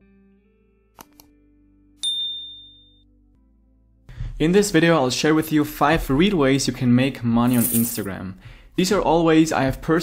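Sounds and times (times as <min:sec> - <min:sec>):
notification bell ding: 0:02.0 - 0:03.0.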